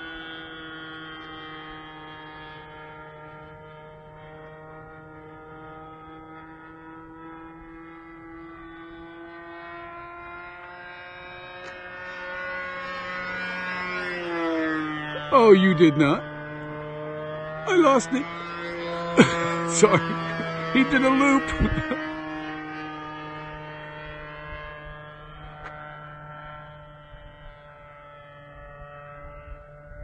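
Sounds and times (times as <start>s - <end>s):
model plane engine buzzing: 0.0s - 30.0s
man speaking: 15.2s - 16.2s, 17.7s - 18.3s, 19.2s - 22.0s.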